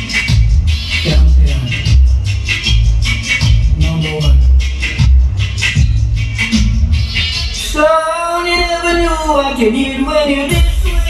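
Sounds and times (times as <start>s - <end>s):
dance music with pulsing bass: 0.0s - 11.0s.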